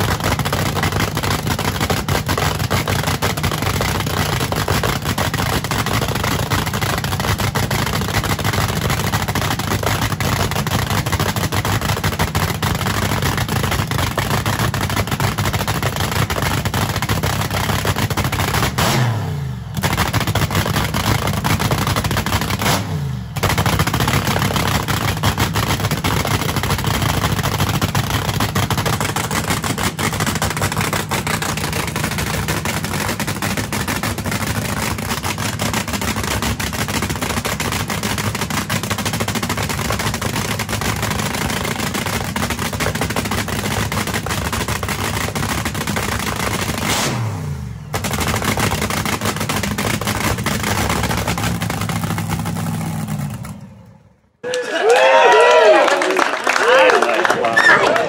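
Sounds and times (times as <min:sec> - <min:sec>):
dragster engine crackling: 0:00.0 - 0:19.1, 0:19.7 - 0:47.2, 0:47.8 - 0:54.1.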